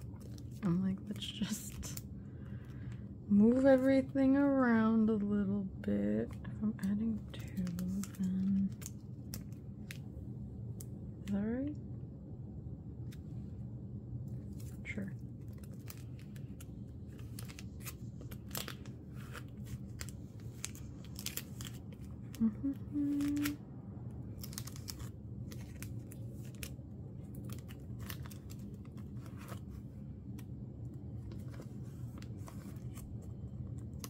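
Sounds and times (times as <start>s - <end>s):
plastic sleeves crinkling: 0.0s - 2.1s, 6.3s - 10.2s, 14.3s - 23.6s, 24.2s - 34.0s
steady low tone: 0.0s - 34.0s.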